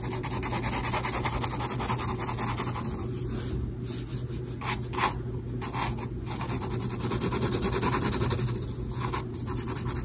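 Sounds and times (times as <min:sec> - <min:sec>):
pencil scratching on paper: 0:00.0 - 0:03.1, 0:04.0 - 0:10.0.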